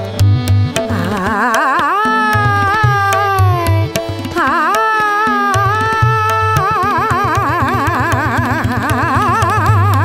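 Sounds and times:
tabla strokes: 0.0 - 10.0
woman singing ornamented phrases: 0.9 - 10.0.

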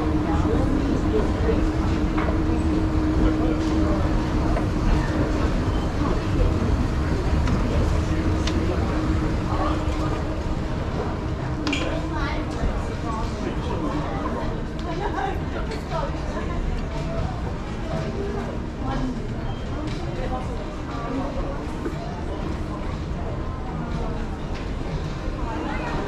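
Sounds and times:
escalator rumble and hum: 0.0 - 26.0
murmur of voices: 0.0 - 26.0.

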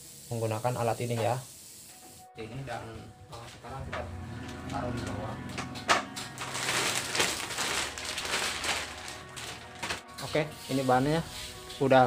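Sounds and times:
plastic wrapping crinkling: 6.2 - 10.4.

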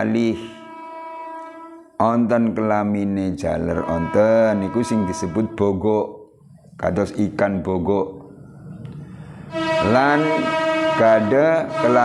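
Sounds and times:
man speaking: 0.0 - 0.7, 2.0 - 6.2, 6.8 - 8.2, 9.8 - 12.0
man holding long vowel: 0.0 - 2.3, 3.6 - 5.9, 9.5 - 12.0.

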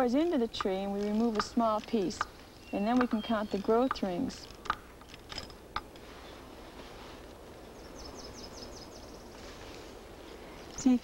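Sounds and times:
faint steady hiss: 0.0 - 11.0
bird chirping: 0.8 - 4.6, 7.6 - 9.5.

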